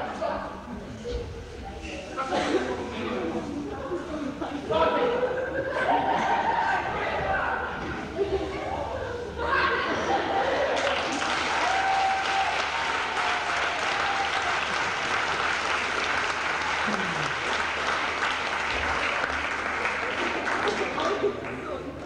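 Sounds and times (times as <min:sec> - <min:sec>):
audience applauding: 0:10.7 - 0:21.8.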